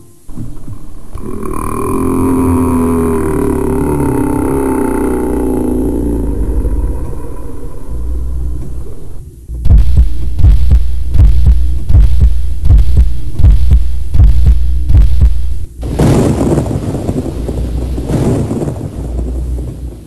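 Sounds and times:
low droning hum: 0:00.0 - 0:20.0
deep repeating thump: 0:09.5 - 0:20.0.

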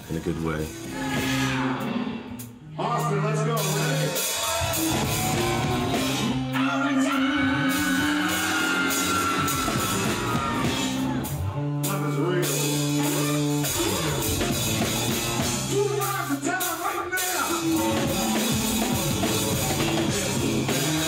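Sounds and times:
electric guitar: 0:00.0 - 0:02.7, 0:03.6 - 0:16.1, 0:17.4 - 0:21.0
low bass notes: 0:00.0 - 0:06.6, 0:07.2 - 0:16.5, 0:17.5 - 0:21.0
drum kit: 0:00.0 - 0:21.0
person singing: 0:06.5 - 0:10.0, 0:11.8 - 0:14.5, 0:15.7 - 0:21.0.

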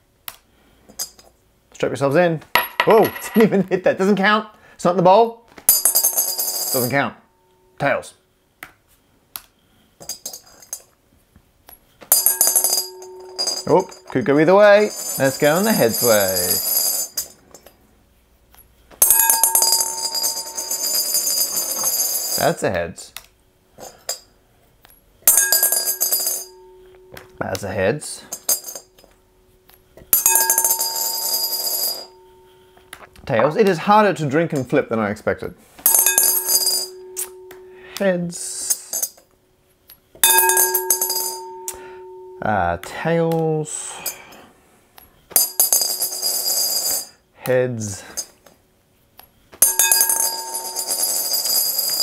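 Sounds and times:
coin clinking in glass bowl: 0:05.7 - 0:06.9, 0:12.1 - 0:17.3, 0:19.0 - 0:22.6, 0:25.3 - 0:27.2, 0:28.3 - 0:28.9, 0:30.2 - 0:32.3, 0:35.9 - 0:37.6, 0:38.6 - 0:39.2, 0:40.2 - 0:42.2, 0:45.3 - 0:47.1, 0:49.6 - 0:52.0
glass bowl ringing: 0:12.1 - 0:14.2, 0:19.0 - 0:22.4, 0:25.3 - 0:27.4, 0:30.2 - 0:32.8, 0:35.9 - 0:38.0, 0:40.2 - 0:42.5, 0:49.6 - 0:52.0.

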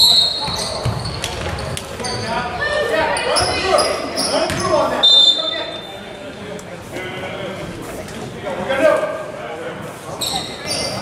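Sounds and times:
voices shouting in a gym: 0:01.9 - 0:06.3
referee's whistle blast: 0:05.0 - 0:05.9.

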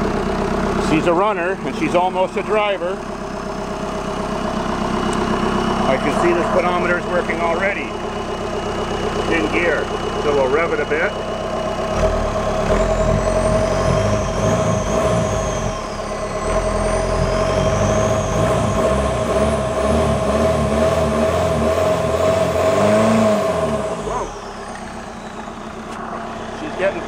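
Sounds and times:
diesel engine revving: 0:00.0 - 0:27.0
high whine: 0:05.1 - 0:08.0, 0:12.0 - 0:21.2, 0:23.3 - 0:27.0.

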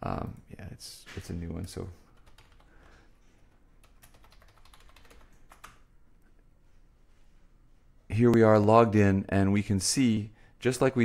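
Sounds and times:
computer keyboard typing: 0:02.1 - 0:05.9.

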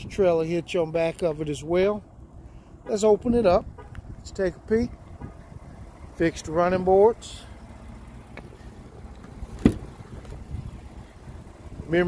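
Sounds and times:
low steady rumble: 0:00.0 - 0:12.0
car door latch clunk: 0:09.2 - 0:10.4.

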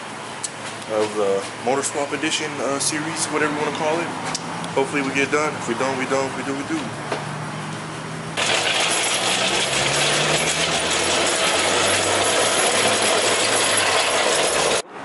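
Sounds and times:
metallic rattle of casters and chain: 0:08.4 - 0:14.8.

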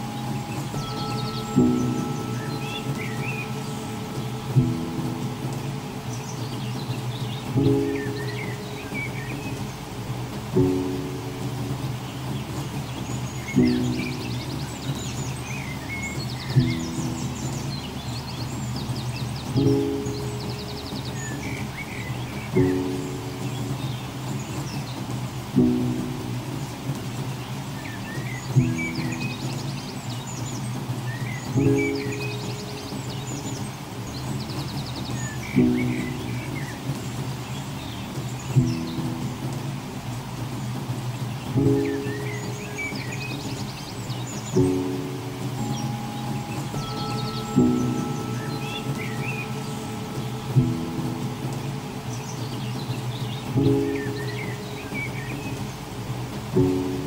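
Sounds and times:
small birds chirping: 0:00.0 - 0:57.0
soft lullaby music: 0:00.0 - 0:57.0.

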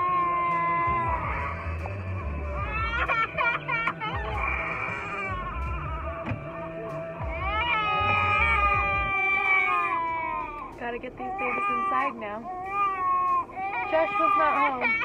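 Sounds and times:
young child crying and wailing: 0:00.0 - 0:06.3, 0:07.2 - 0:15.0
low rumble of car on road: 0:00.0 - 0:15.0.

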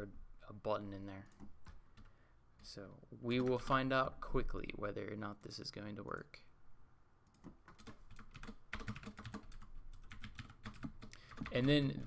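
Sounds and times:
typing on computer keyboard: 0:07.3 - 0:12.0.

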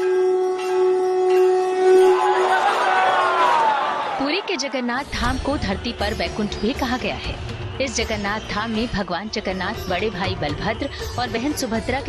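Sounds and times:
conch shell blown: 0:00.0 - 0:03.2.

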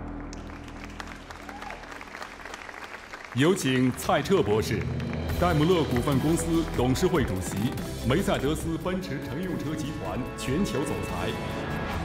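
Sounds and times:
sustained low music notes: 0:00.0 - 0:02.7, 0:03.4 - 0:12.0
audience applauding: 0:00.0 - 0:08.6.

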